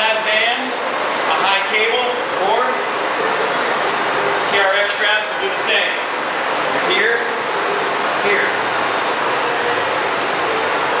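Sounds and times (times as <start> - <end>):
steady rushing fan noise: 0.0 - 11.0.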